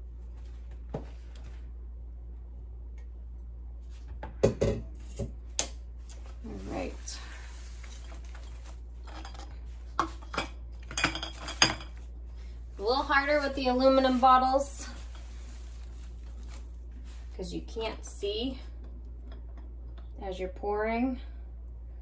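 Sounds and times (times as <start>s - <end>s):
kitchen containers clinking and knocking: 9.0s - 12.0s.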